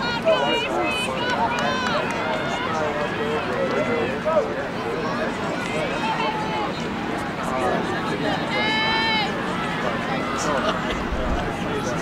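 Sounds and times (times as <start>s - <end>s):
people calling and chattering: 0.0s - 12.0s.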